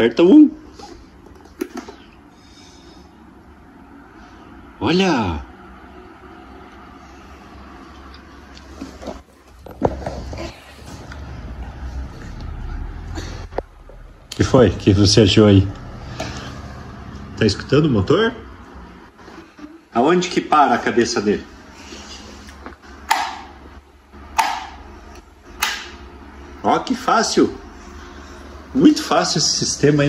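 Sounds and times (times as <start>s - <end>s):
desk fan running: 0.0s - 30.0s.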